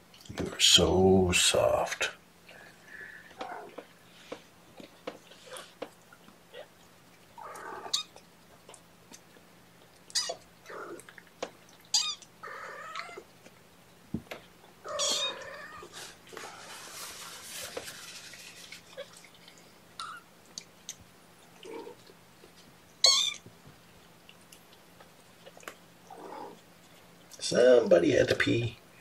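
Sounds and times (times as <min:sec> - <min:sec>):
kittens mewing: 0:03.3 - 0:03.9, 0:10.1 - 0:11.1, 0:14.8 - 0:16.2, 0:23.0 - 0:23.5
kitten rustling on a towel: 0:15.9 - 0:19.0.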